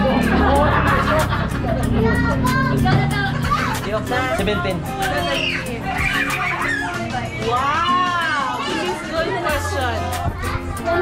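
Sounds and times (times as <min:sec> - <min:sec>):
background music: 0:00.0 - 0:11.0
voices and high-pitched calls: 0:05.0 - 0:09.2.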